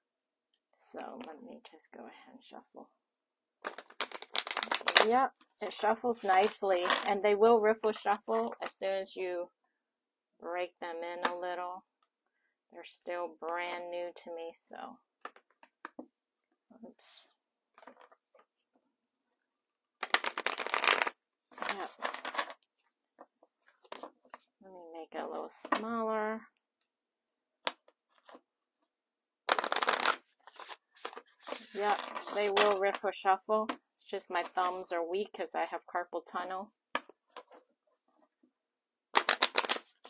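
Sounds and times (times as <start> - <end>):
card deck riffle shuffle: 3.6 - 7.0, 20.0 - 22.5, 29.5 - 33.0, 39.2 - 40.0.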